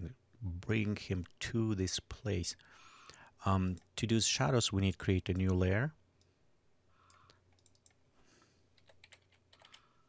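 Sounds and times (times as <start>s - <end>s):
computer keyboard and mouse clicks: 7.1s - 8.0s, 8.8s - 9.8s.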